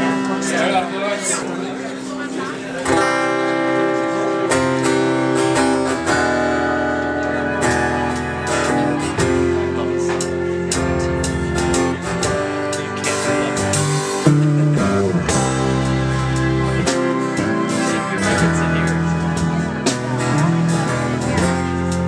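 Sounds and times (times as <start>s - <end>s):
bass notes: 0.0s - 22.0s
electric guitar chords: 0.0s - 22.0s.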